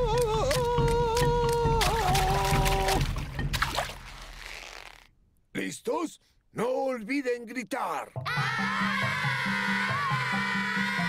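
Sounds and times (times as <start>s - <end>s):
cartoon water splashing: 1.8s - 5.1s.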